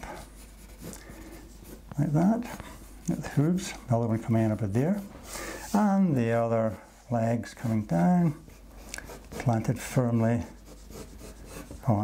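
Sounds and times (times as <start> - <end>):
pencil scratching on paper: 0.0 - 3.8, 7.6 - 12.0.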